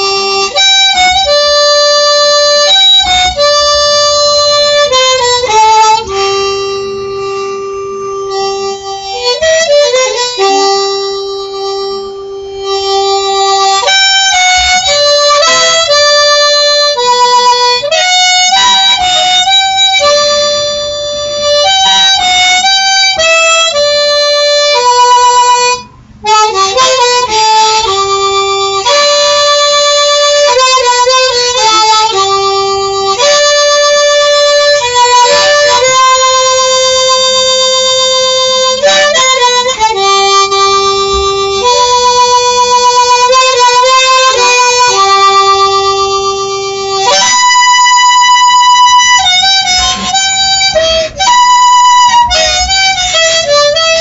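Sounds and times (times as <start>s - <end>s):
harmonica melody: 0.0s - 54.0s.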